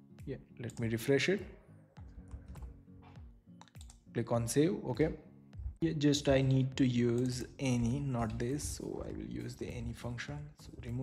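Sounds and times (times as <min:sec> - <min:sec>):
faint background music: 0:00.0 - 0:11.0
computer keyboard keystrokes: 0:03.6 - 0:04.0.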